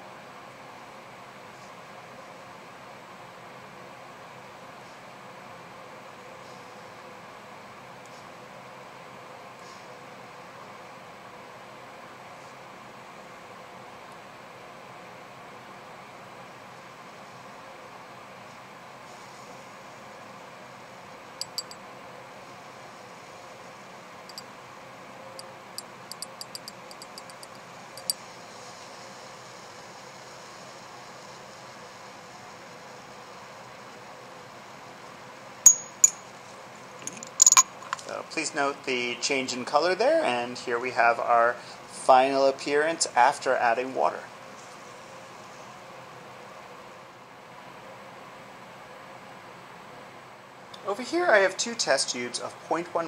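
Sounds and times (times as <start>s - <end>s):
glassy clinks: 21.4s - 21.8s, 26.1s - 28.2s, 35.7s - 36.3s, 37.1s - 37.7s
small ticks and clicks: 26.1s - 28.2s.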